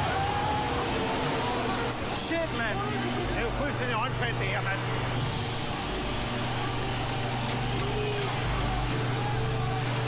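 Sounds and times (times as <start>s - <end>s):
truck engine hum: 0.0s - 10.0s.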